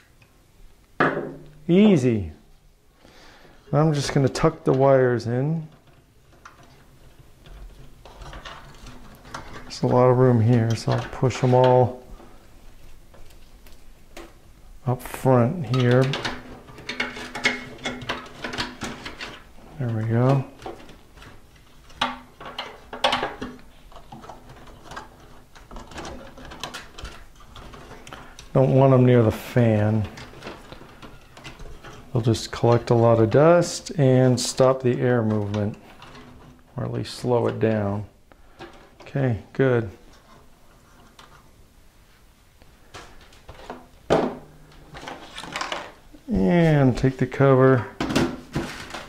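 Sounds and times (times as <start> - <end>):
scraping and rustling: 3.1 - 49.0
cables clicking and knocking in pc case: 15.7 - 28.8.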